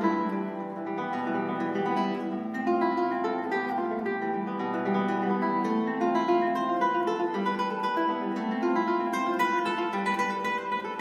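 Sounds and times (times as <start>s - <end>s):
classical guitar fingerstyle: 0.0s - 11.0s.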